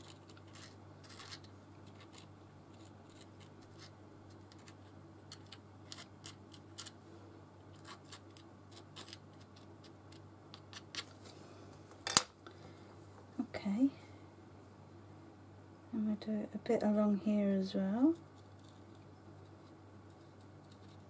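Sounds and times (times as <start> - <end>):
tool scraping on paper: 0.0 - 6.9, 7.7 - 9.7.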